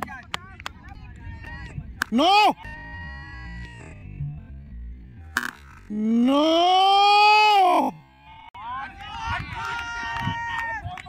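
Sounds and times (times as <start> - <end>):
person yelling: 2.1 - 2.7, 6.0 - 8.0.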